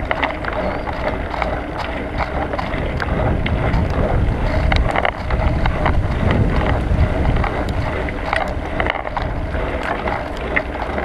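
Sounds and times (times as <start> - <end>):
bike clicks and rattles: 0.0 - 11.0
wind buffeting microphone: 0.0 - 11.0.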